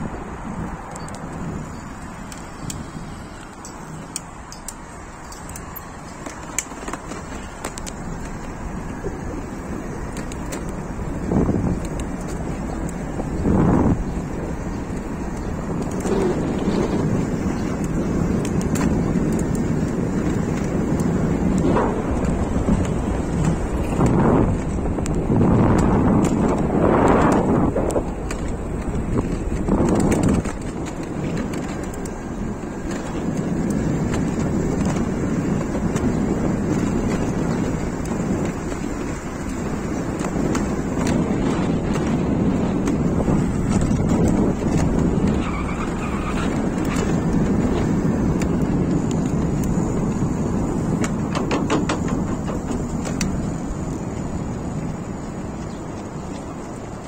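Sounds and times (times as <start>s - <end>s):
bike tyre noise: 0.0s - 57.0s
wind on microphone: 0.0s - 57.0s.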